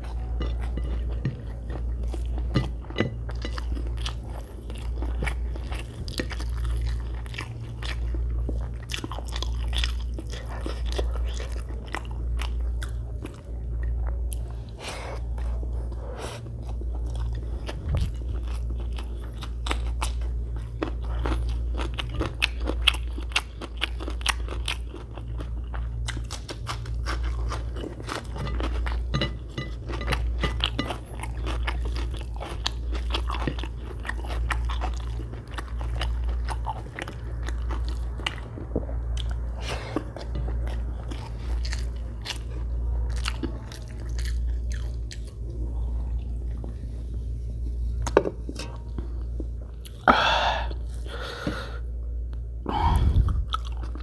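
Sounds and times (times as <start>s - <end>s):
close chewing with mouth smacking: 0.0s - 50.1s, 52.9s - 54.0s
steady low rumble: 0.0s - 54.0s.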